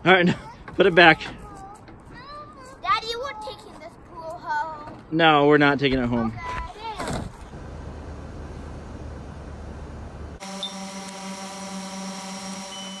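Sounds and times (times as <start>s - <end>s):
drone propeller whine: 9.6s - 13.0s.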